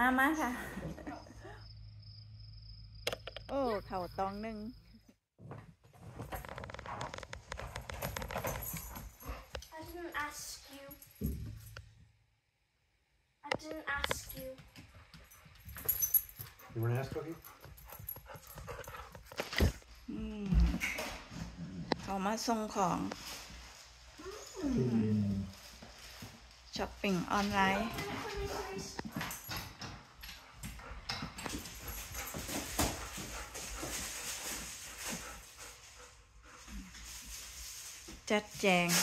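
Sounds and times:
dog low vocal sound: 0:24.2 - 0:25.6
plastic bags rustling: 0:32.4 - 0:35.9, 0:36.7 - 0:39.0.

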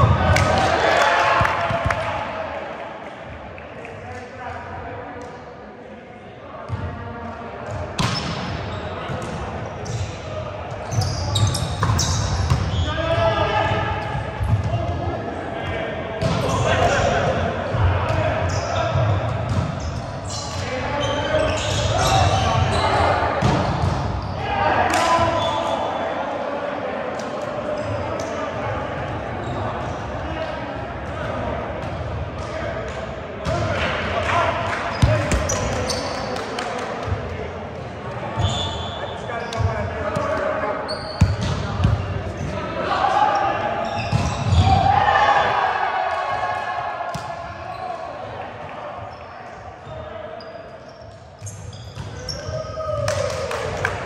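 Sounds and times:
players calling out: 0:33.4 - 0:37.2.

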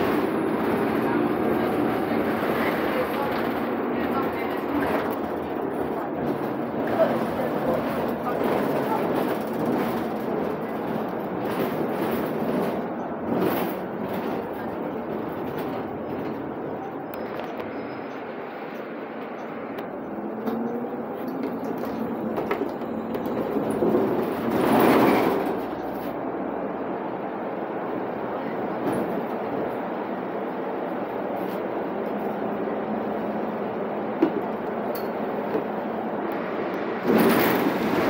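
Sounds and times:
bus road and drivetrain noise: 0:00.0 - 0:38.0.

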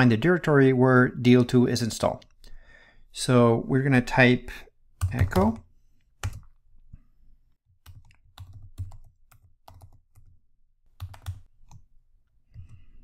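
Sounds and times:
computer keyboard typing: 0:05.0 - 0:05.6, 0:06.2 - 0:06.6, 0:07.8 - 0:11.9.

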